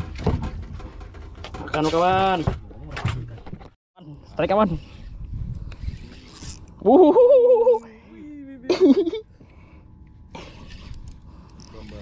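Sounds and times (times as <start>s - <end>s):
fishing reel whirring: 5.6s - 6.9s.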